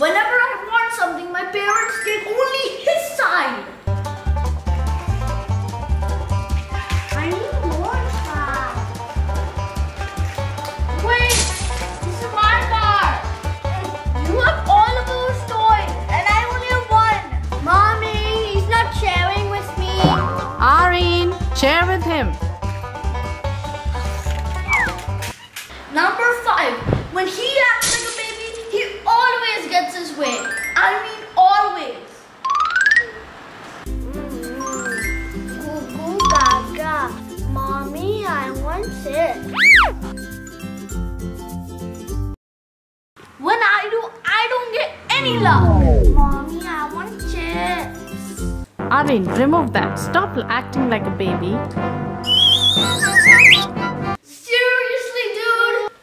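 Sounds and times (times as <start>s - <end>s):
upbeat banjo music: 3.9s - 24.2s
short falling squeal: 39.6s - 39.9s, 52.3s - 53.7s
wobbling whistle sliding up: 39.6s - 39.9s, 45.2s - 46.4s, 52.3s - 53.7s
high thin tone gliding upward: 45.2s - 46.6s.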